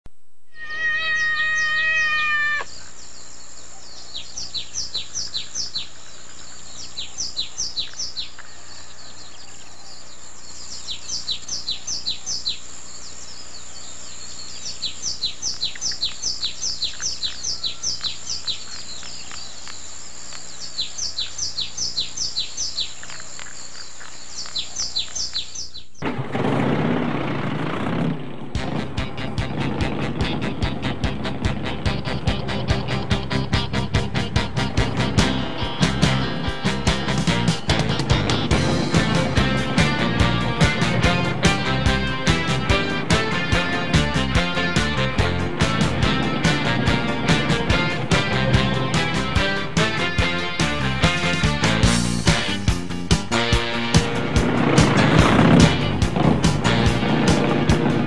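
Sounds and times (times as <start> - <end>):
birds chirping: 0.6 - 26.1, 27.2 - 58.0
brief loud rushing noise: 26.0 - 32.5, 51.5 - 58.0
music with a steady beat: 28.6 - 58.0.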